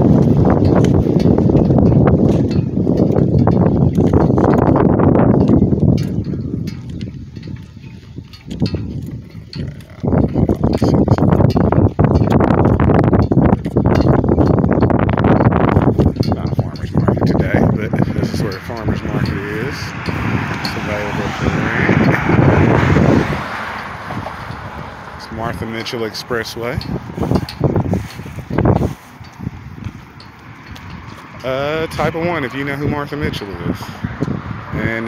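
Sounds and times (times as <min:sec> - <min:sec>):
footsteps on pavement: 0:00.0 - 0:15.0, 0:16.9 - 0:31.9
wind buffeting microphone: 0:00.0 - 0:35.0.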